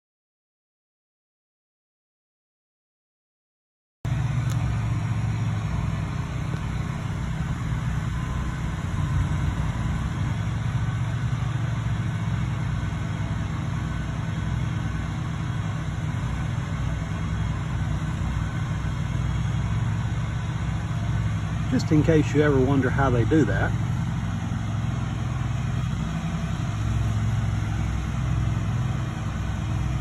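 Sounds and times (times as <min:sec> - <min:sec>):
vehicle engine humming: 0:04.1 - 0:30.0.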